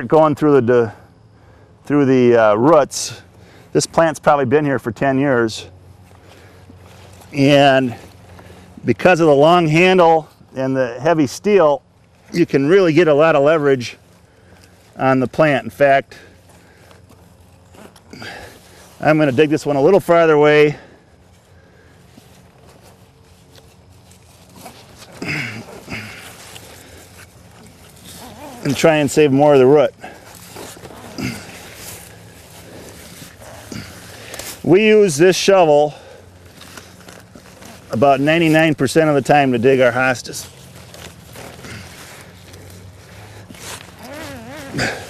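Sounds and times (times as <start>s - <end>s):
low steady hum: 0.0s - 45.0s
trowel scraping and crunching soil: 22.2s - 45.0s
person grunting with effort: 25.2s - 26.2s, 31.1s - 31.7s, 44.5s - 45.0s.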